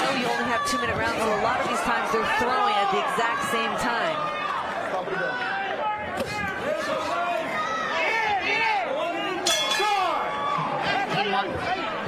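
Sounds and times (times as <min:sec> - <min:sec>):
commentators talking: 0:00.0 - 0:07.2
arena crowd noise: 0:00.0 - 0:12.0.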